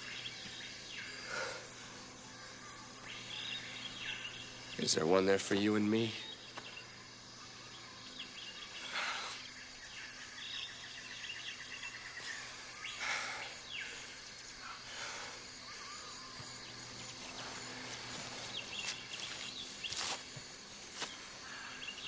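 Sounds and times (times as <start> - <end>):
bird chirps and calls: 2.3 - 5.1.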